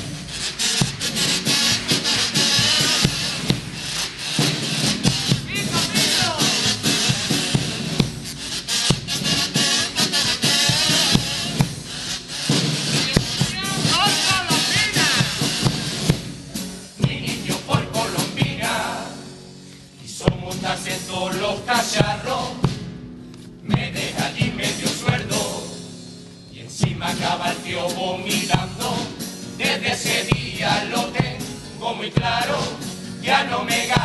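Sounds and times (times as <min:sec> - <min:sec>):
steady drum beat: 0:00.0 - 0:19.4, 0:20.1 - 0:26.0, 0:26.8 - 0:34.0.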